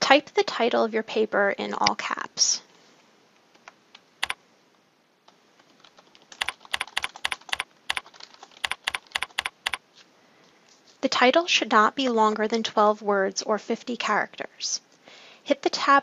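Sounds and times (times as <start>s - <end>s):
computer keyboard typing: 5.6s - 9.8s.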